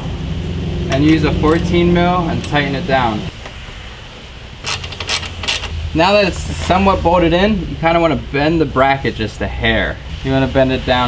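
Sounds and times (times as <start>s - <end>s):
low steady hum: 0.0s - 11.0s
wrench clicking and scraping metal: 4.6s - 5.8s.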